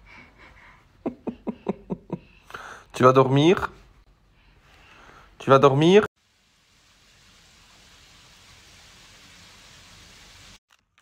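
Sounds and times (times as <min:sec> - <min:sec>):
fountain water splashing: 0:06.2 - 0:10.6.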